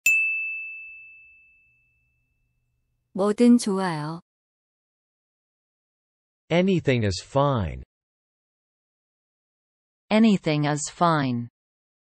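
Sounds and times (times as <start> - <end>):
high chime ding: 0.0 - 2.4.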